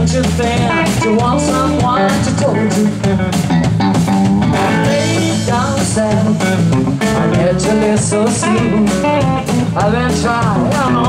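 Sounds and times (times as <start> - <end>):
person singing into microphone: 0.0 - 3.1, 4.6 - 11.0
bass guitar: 0.0 - 11.0
electric guitar: 0.0 - 11.0.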